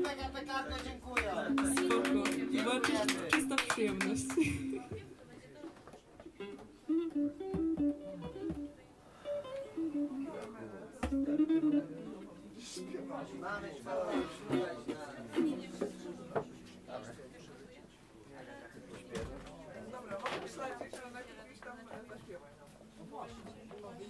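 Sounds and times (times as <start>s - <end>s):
single notes plucked: 1.4s - 5.0s
small string instrument strummed: 11.1s - 17.7s.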